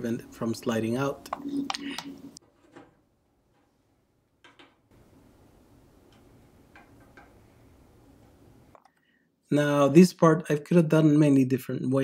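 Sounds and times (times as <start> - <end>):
faint room hiss: 0.0 - 12.0.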